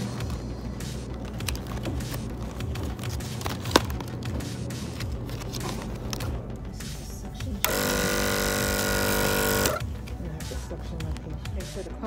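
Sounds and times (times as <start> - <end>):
electric pump motor humming: 7.6 - 9.9.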